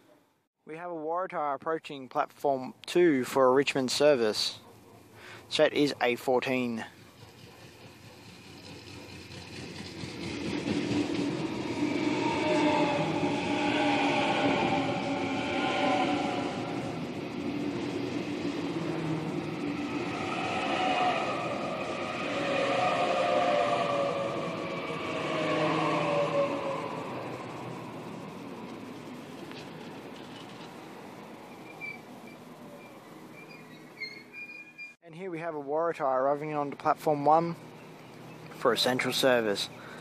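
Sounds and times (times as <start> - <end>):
train electric drive whining: 4.4 - 34.9
train rumbling: 5.5 - 34.8.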